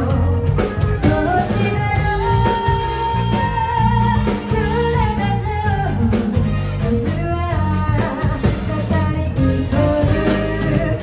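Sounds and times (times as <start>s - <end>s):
electric guitar: 0.0s - 11.0s
low band accompaniment: 0.0s - 11.0s
woman singing: 0.0s - 11.0s.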